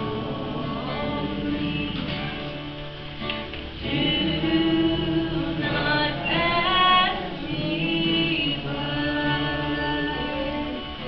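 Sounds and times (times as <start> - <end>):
acoustic guitar: 0.0 - 11.0
woman singing: 3.8 - 11.0.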